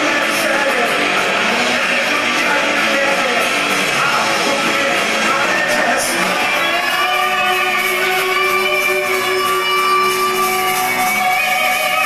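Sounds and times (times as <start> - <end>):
electric guitars sustained chord: 0.0 - 12.0
rock band playing loud: 0.0 - 12.0.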